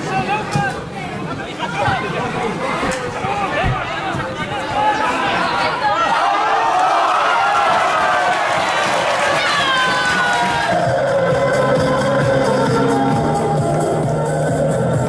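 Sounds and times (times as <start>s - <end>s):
spectators shouting and cheering: 0.0s - 15.0s
music: 8.9s - 15.0s.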